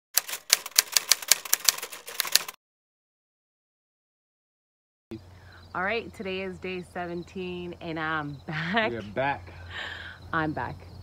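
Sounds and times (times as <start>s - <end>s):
typewriter key clacks: 0.2s - 2.6s.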